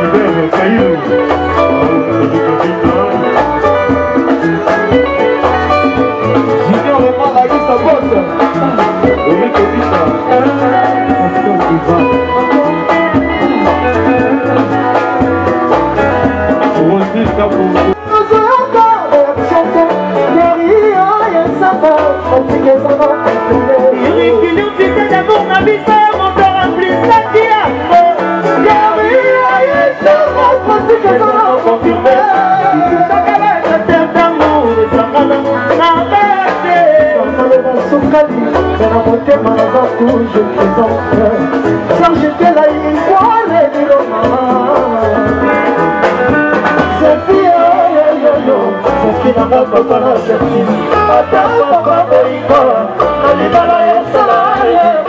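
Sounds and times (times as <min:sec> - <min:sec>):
live rumba band playing: 0:00.0 - 0:55.0
woman singing: 0:18.0 - 0:45.4, 0:46.8 - 0:55.0.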